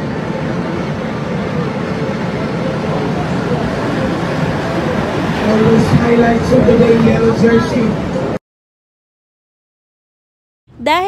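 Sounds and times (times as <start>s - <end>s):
rushing background noise: 0.0s - 8.4s.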